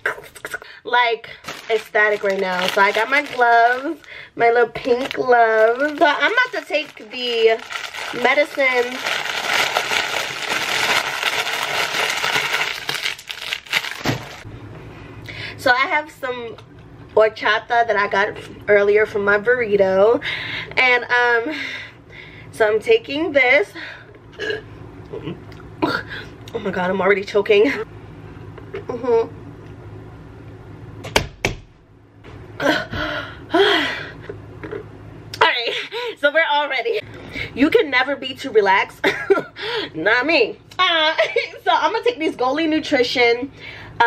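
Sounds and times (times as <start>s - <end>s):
plastic packaging crinkling: 1.3s - 14.5s.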